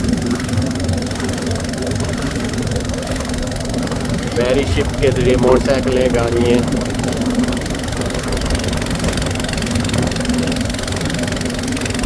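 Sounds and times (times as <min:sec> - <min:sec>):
boat engine running: 0:00.0 - 0:12.0.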